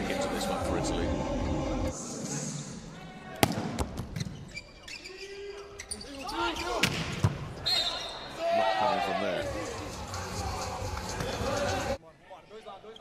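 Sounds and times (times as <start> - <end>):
volleyball being hit: 3.4 - 4.1
sneakers squeaking on court floor: 4.0 - 8.4
crowd noise: 5.1 - 13.0.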